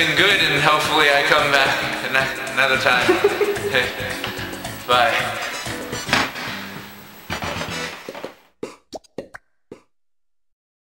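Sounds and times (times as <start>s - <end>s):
music: 0.0s - 8.5s.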